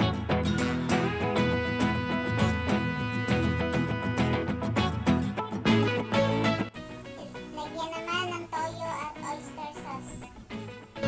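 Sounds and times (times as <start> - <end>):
background music gliding melody: 0.0 - 11.0.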